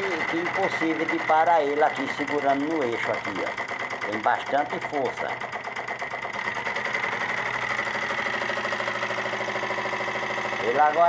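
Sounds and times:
small engine fast mechanical ticking: 0:00.0 - 0:11.0.

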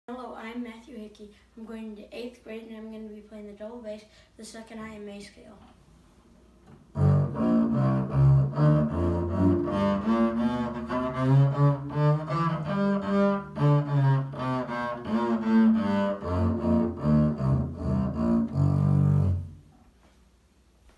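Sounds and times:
bowed double bass notes: 0:06.7 - 0:19.8.

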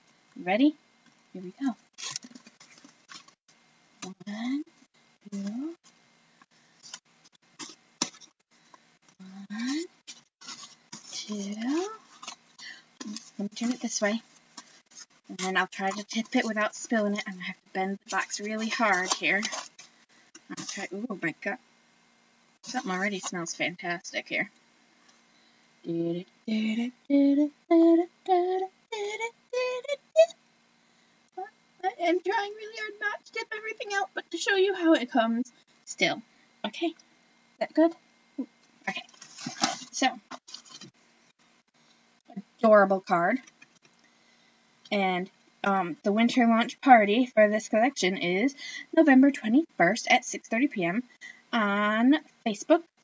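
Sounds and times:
cardboard scraping: 0:10.1 - 0:12.4, 0:39.0 - 0:40.9
woman singing wordless tune: 0:25.8 - 0:30.4.

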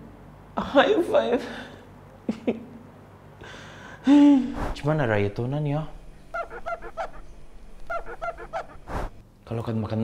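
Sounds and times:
towel squeaking on plate: 0:06.4 - 0:09.2.

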